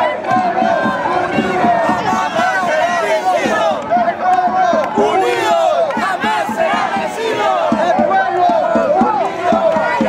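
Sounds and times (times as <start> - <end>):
crowd shouting chants: 0.0 - 10.0.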